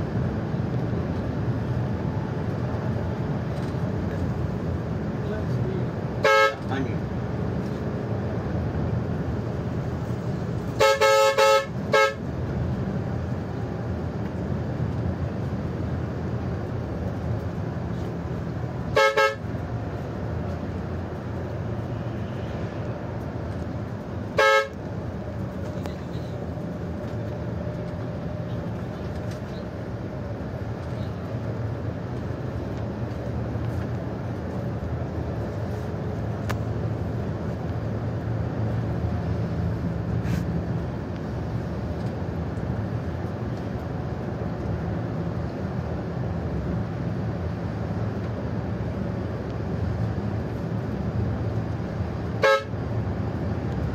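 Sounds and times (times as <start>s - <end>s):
bus engine and tyres droning: 0.0s - 53.9s
bus horn blasts: 6.2s - 6.8s, 10.7s - 12.3s, 18.8s - 19.6s, 24.3s - 24.9s, 52.4s - 52.8s.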